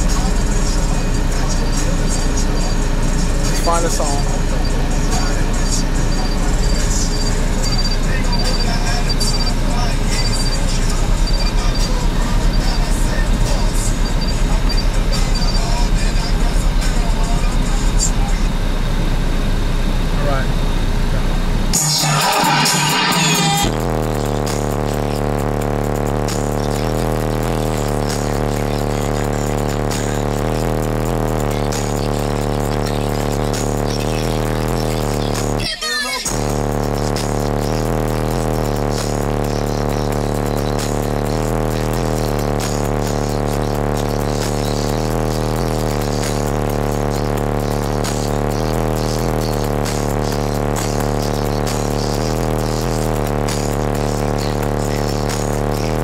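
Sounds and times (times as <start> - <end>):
bass-heavy music on car stereo: 0.0 - 56.0.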